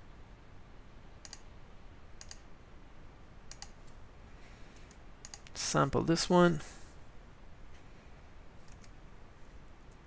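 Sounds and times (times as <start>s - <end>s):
low steady background noise: 0.0s - 10.0s
computer mouse clicks: 1.2s - 1.5s, 2.2s - 2.5s, 3.5s - 4.0s, 4.8s - 5.6s, 8.6s - 9.0s.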